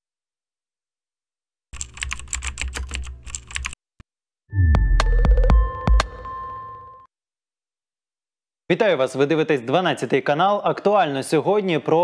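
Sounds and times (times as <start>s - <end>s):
computer keyboard key clicks: 1.8s - 3.8s.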